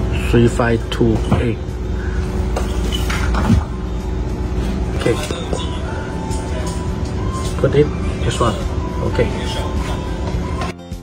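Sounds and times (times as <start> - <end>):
low mechanical rumble: 0.0 - 10.7.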